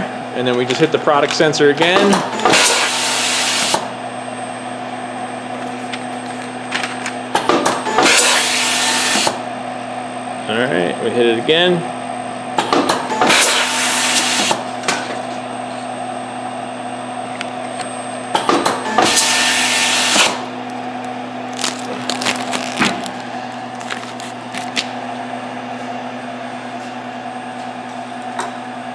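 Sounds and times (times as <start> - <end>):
machine hum: 0.0 - 28.9.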